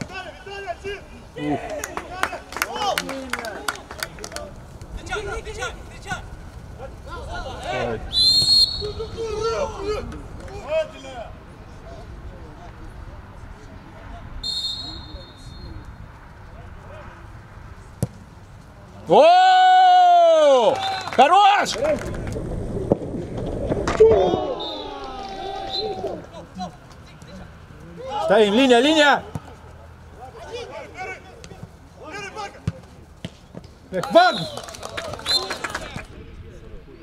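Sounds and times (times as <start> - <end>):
players shouting: 0.0 - 11.3, 19.0 - 22.0, 23.9 - 33.0
referee's whistle blast: 8.1 - 9.1, 14.4 - 15.8
ball being kicked thud: 18.0 - 18.2
wind rumble on microphone: 21.7 - 24.6
faint shouts of players: 24.0 - 26.7.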